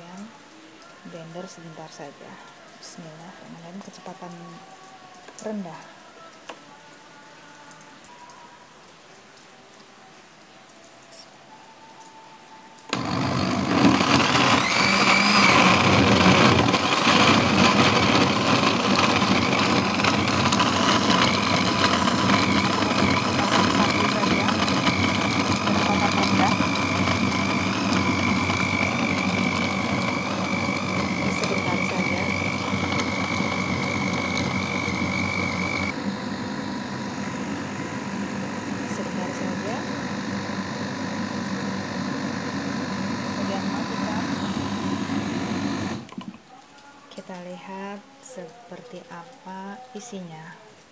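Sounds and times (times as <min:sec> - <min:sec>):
blender motor running: 0:12.9 - 0:46.2.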